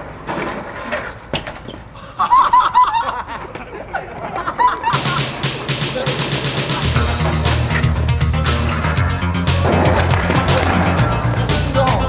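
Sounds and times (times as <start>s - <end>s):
sharp crack: 5.0s - 12.0s
skateboard clattering on concrete: 9.6s - 12.0s.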